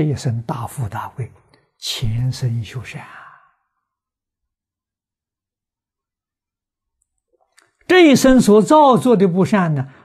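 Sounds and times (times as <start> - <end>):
elderly man speaking: 0.0 - 3.5.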